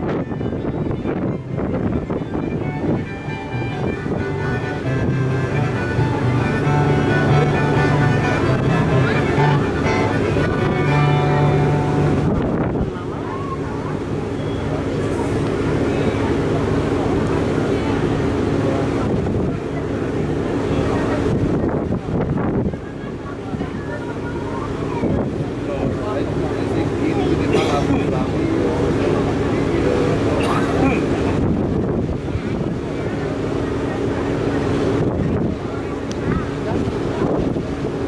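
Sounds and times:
music with low bass line: 0:00.0 - 0:13.0
wind rumbling on microphone: 0:00.0 - 0:14.2, 0:15.5 - 0:26.9, 0:31.0 - 0:38.0.

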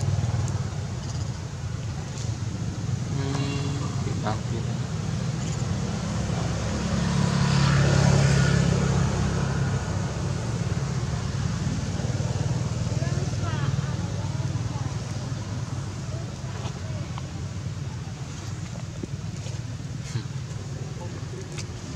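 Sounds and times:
vehicle engine hum: 0:00.0 - 0:21.9.

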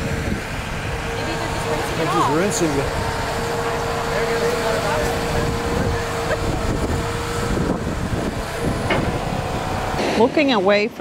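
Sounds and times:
excavator diesel engine rumble: 0:00.0 - 0:11.0
hydraulic whine: 0:00.0 - 0:11.0.

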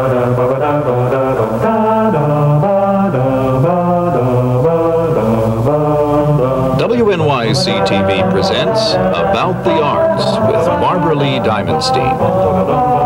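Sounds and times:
chant-like theme melody: 0:00.0 - 0:13.0.

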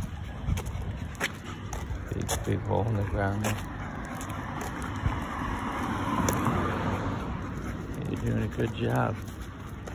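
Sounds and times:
vehicle passing by: 0:00.0 - 0:09.9.

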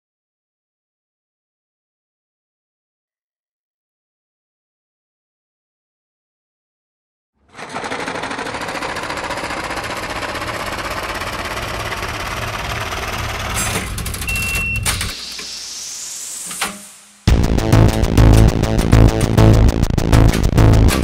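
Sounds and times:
noisy sound-design texture: 0:09.5 - 0:19.8
glitchy clicks: 0:13.4 - 0:15.6
electronic music with a beat: 0:17.3 - 0:21.0.

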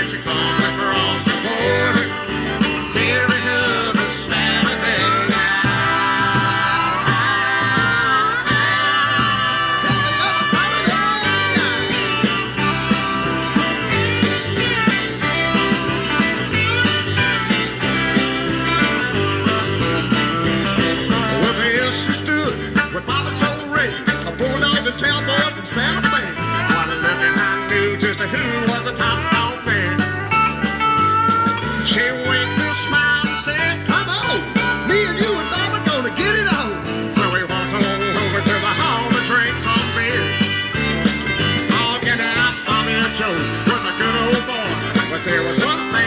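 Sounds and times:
country-rock band playing: 0:00.0 - 0:46.0
harmonica lead: 0:00.0 - 0:46.0.

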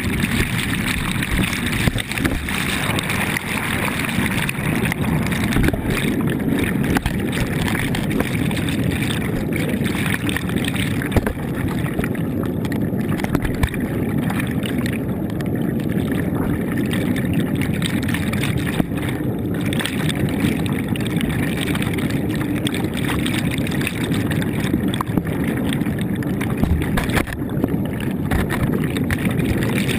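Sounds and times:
muffled underwater rush: 0:00.0 - 0:29.9.

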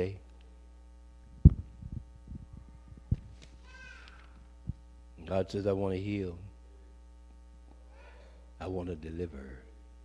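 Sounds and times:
electrical mains hum: 0:00.0 - 0:10.0
microphone handling thumps: 0:01.3 - 0:03.6.

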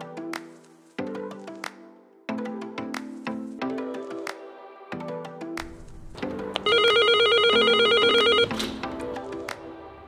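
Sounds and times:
background music: 0:00.0 - 0:10.0
warbling intercom ring: 0:06.7 - 0:08.5.

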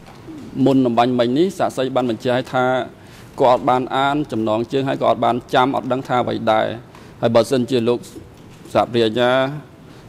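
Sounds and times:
man speaking: 0:00.3 - 0:09.8.

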